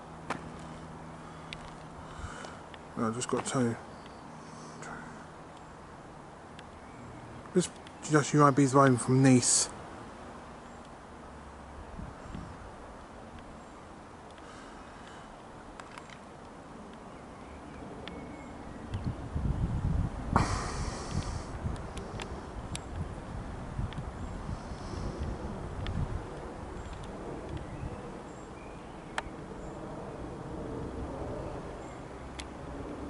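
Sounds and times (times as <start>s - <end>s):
wind buffeting microphone: 11.8s - 12.8s, 18.8s - 28.3s
faint clicks: 14.2s - 17.0s
airliner rumble overhead: 20.2s - 33.0s.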